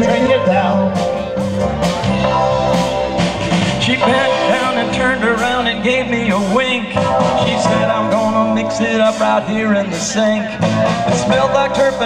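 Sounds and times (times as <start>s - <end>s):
bass guitar: 0.0s - 12.0s
drums: 0.0s - 12.0s
wavering lead guitar melody: 0.0s - 12.0s.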